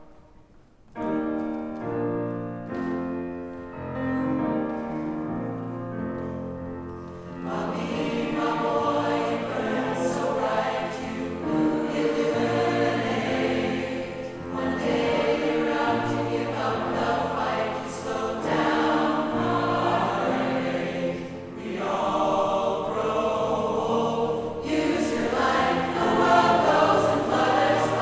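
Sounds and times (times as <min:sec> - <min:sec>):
large mixed choir singing: 0:07.2 - 0:28.0.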